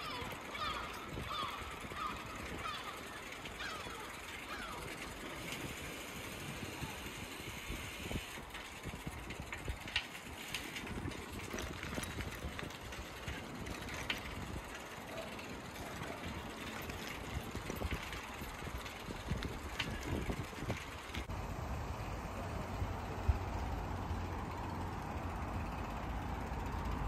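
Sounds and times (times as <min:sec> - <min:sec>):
bicycle rolling over cobblestones: 0:00.0 - 0:27.0.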